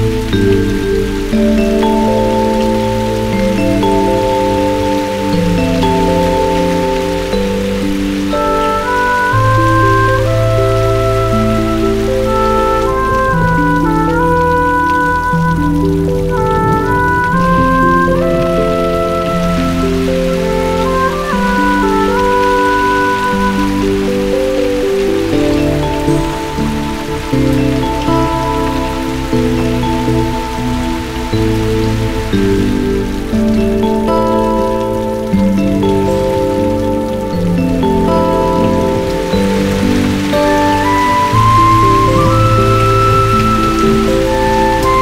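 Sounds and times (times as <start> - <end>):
deep bass notes: 0.0 - 45.0
heavy rain: 0.0 - 45.0
slow orchestral melody: 0.0 - 45.0.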